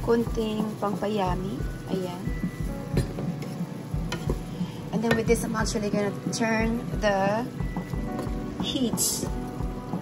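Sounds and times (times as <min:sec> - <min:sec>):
light sizzle: 0:00.0 - 0:10.0.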